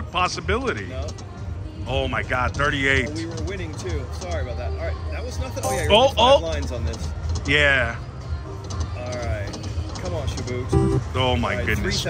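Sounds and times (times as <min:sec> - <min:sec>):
low casino hum: 0:05.6 - 0:06.5, 0:09.6 - 0:12.0
slot machine reel-spin music: 0:05.6 - 0:06.8.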